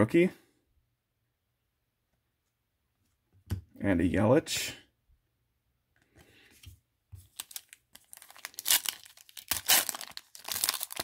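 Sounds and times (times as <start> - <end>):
foil pack crinkling and tearing: 7.2 - 11.0.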